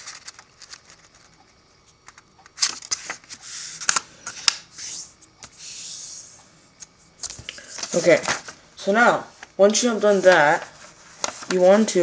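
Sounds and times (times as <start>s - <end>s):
paper rustling and crinkling: 0.0s - 1.4s, 2.0s - 5.6s, 7.2s - 8.6s, 9.4s - 12.0s.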